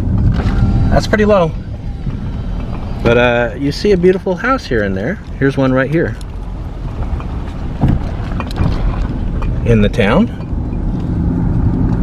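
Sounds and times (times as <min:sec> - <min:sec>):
car driving rumble inside cabin: 0:00.0 - 0:12.0.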